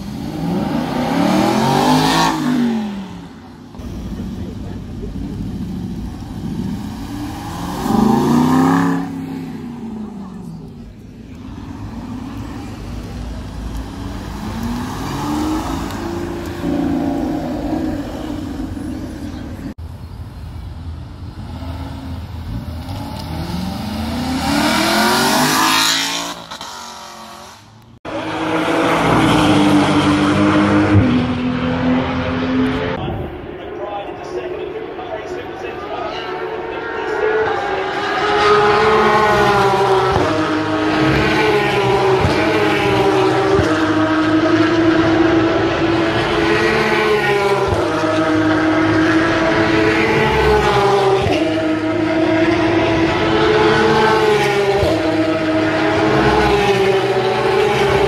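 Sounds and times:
sports car engines revving: 0:00.0 - 0:19.8, 0:20.7 - 0:58.0.

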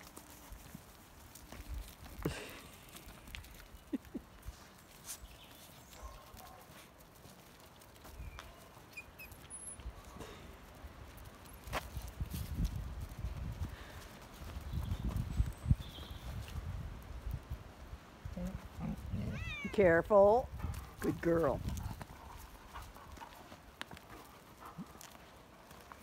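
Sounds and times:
paws scrabbling on gravel: 0:00.0 - 0:18.0, 0:18.6 - 0:26.0.

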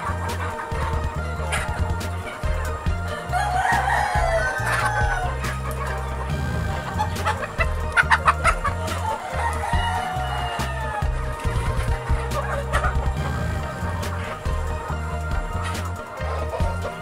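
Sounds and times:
background music with bass line: 0:00.0 - 0:17.0
chickens clucking: 0:00.0 - 0:17.0
rooster crowing: 0:03.1 - 0:05.4, 0:09.0 - 0:11.2.

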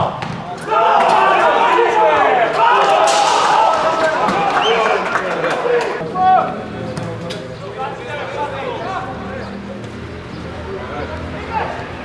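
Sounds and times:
excited voices shouting: 0:00.6 - 0:06.6.

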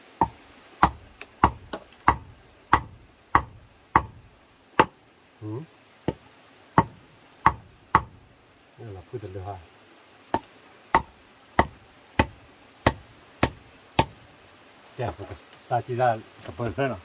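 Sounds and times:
wood striking wood: 0:00.1 - 0:05.0, 0:06.8 - 0:08.2, 0:10.3 - 0:14.2.

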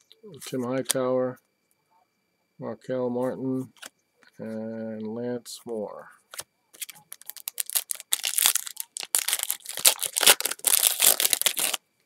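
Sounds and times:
plastic foil wrapper crinkling: 0:06.8 - 0:11.8.

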